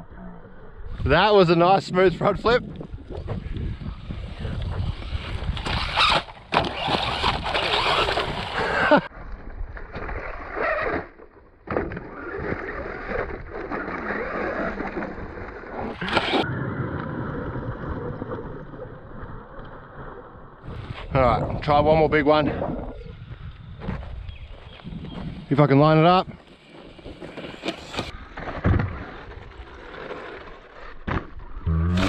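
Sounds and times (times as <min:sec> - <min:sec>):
wind noise on microphone: 0:00.0 - 0:10.9, 0:15.8 - 0:26.4
tyres running on dirt: 0:03.2 - 0:09.1
electric motor whining: 0:04.4 - 0:09.0.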